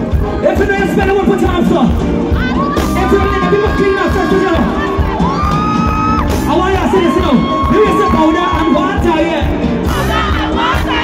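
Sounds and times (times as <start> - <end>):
crowd shouting and singing along: 0.0 - 11.0
live band playing loudly: 0.0 - 11.0.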